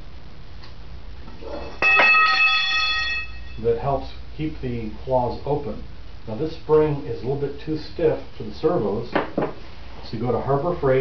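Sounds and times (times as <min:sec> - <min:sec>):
metallic strike ringing: 0:01.4 - 0:03.8.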